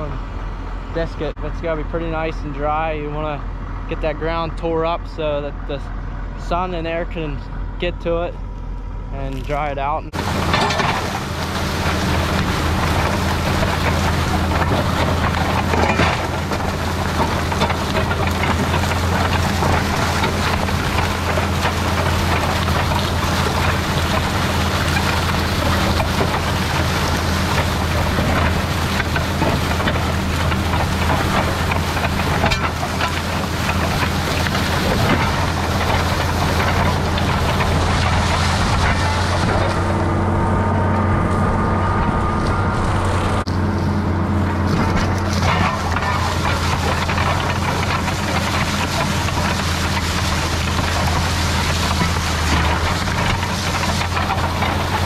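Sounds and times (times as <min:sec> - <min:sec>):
soil churned by plow: 0:00.0 - 0:55.0
tractor engine under load: 0:00.0 - 0:55.0.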